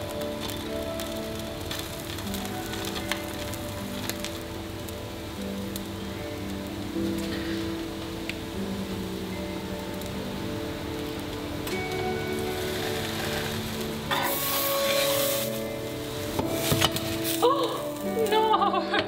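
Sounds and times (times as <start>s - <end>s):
sandwich sizzling in frying pan: 0.0s - 18.7s
background music: 0.0s - 19.0s.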